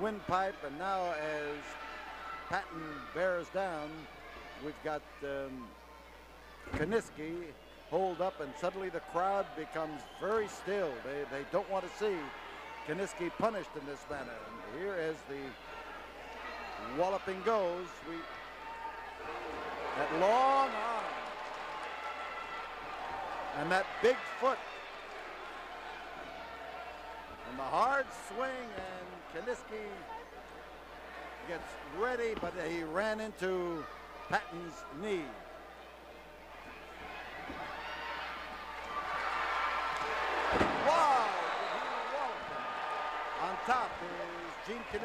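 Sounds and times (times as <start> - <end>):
arena crowd noise: 0.0 - 45.0
people shouting: 39.9 - 45.0.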